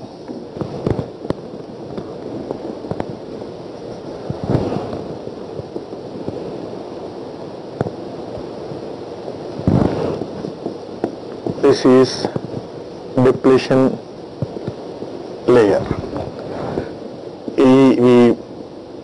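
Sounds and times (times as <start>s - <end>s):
rustling bursts: 0.0s - 18.0s
steady noisy background: 0.0s - 19.0s.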